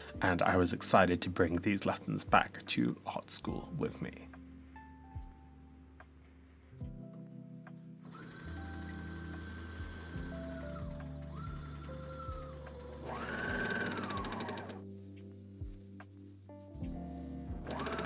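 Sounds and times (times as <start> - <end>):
background music: 0.0 - 18.0
serger stitching: 8.1 - 14.8, 17.6 - 18.0.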